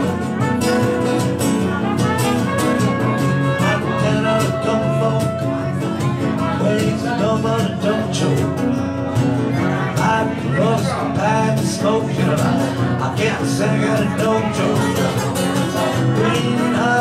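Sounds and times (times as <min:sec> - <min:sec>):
acoustic guitar strumming: 0:00.0 - 0:17.0.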